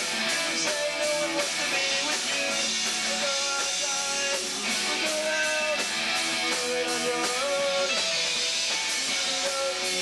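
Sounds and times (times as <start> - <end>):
live punk band playing: 0.0 - 10.0.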